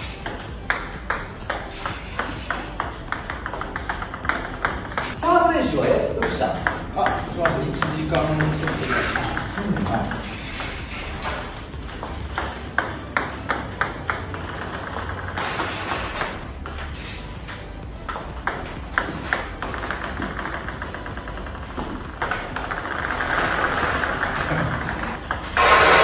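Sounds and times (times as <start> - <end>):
table tennis balls clicking: 0.0 - 26.0.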